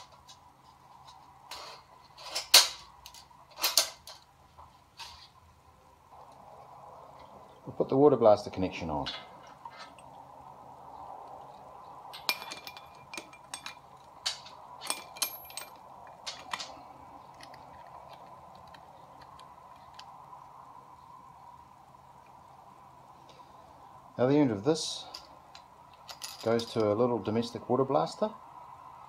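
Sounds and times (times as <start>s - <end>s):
faint steady hum: 0.0s - 29.0s
steel fittings clinking: 12.1s - 16.8s.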